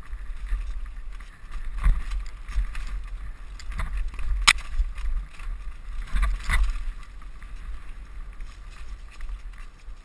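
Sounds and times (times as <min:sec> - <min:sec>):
bike jolting over bumps: 0:00.0 - 0:10.0
wind rumble on microphone: 0:00.0 - 0:10.0.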